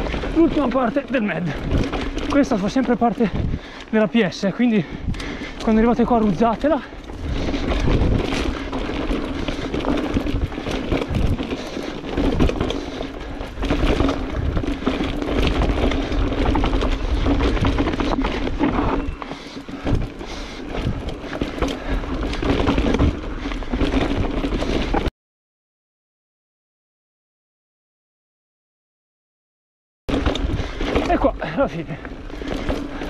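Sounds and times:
bike rattling over bumps: 0:00.0 - 0:25.1, 0:30.1 - 0:33.0
tyres rolling over loose dirt: 0:00.0 - 0:25.1, 0:30.1 - 0:33.0
wind on microphone: 0:07.1 - 0:11.6.

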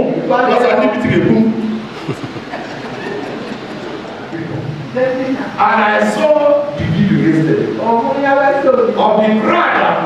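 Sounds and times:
large hall background rumble: 0:00.0 - 0:10.0.

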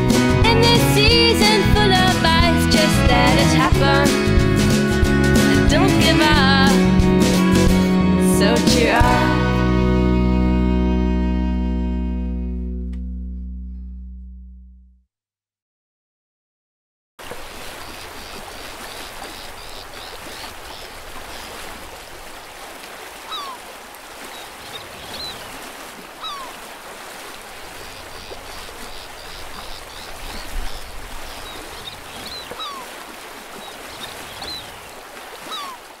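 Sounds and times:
water rushing and lapping: 0:17.2 - 0:36.0
faint bird twittering: 0:17.8 - 0:21.7, 0:23.3 - 0:26.6, 0:27.7 - 0:35.9
bird descending call: 0:23.3 - 0:23.6, 0:26.2 - 0:26.6, 0:27.8 - 0:33.0, 0:35.5 - 0:35.9.

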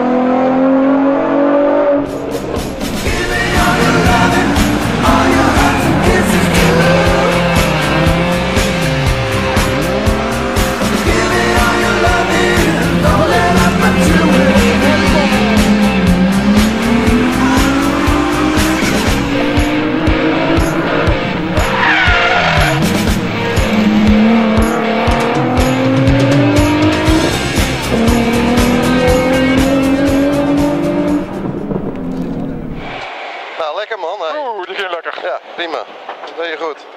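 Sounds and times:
rally car engine revving: 0:00.0 - 0:33.5
music with steady beat: 0:02.0 - 0:31.6
tyre squeal: 0:21.6 - 0:22.9.

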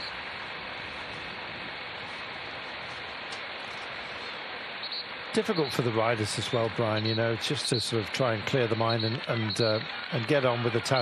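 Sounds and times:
wind noise: 0:00.0 - 0:04.2.

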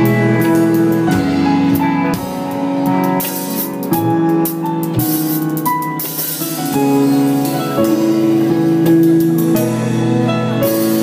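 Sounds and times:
drum kit cymbal strokes: 0:00.0 - 0:11.0.

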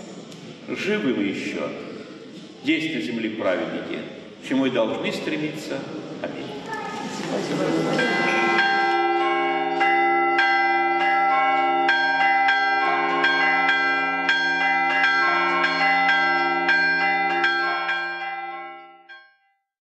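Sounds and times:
church bells ringing: 0:06.6 - 0:19.5.

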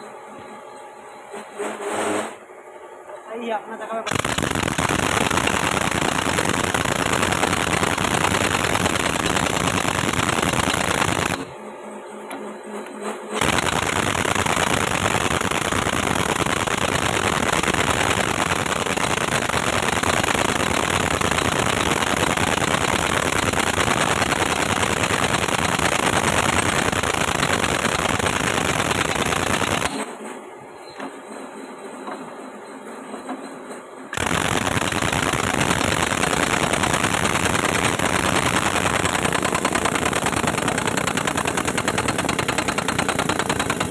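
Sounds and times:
impact wrench hammering: 0:36.5 - 0:43.9.

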